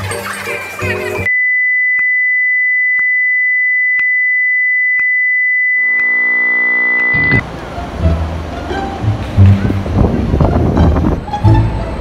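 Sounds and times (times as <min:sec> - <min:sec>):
low buzzing tone: 0:05.6 - 0:07.4.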